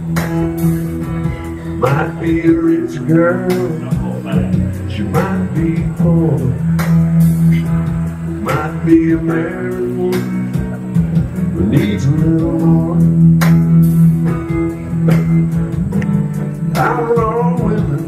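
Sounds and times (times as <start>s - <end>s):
amplified guitar chords: 0.0s - 18.0s
man singing: 1.2s - 6.8s, 8.3s - 13.5s, 16.7s - 18.0s.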